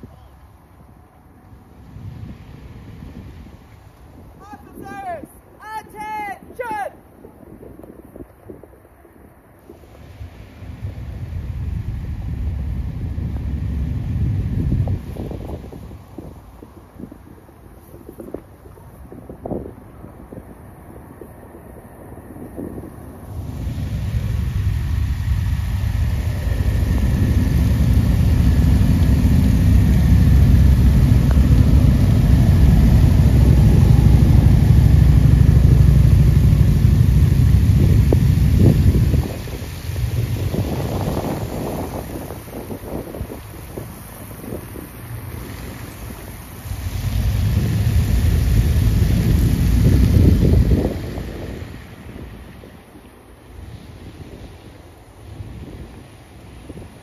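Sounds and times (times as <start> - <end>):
tyre hiss on wet road: 0.0 - 4.4, 9.6 - 57.0
wind rumble on microphone: 0.0 - 57.0
motorcycle engines: 8.9 - 57.0.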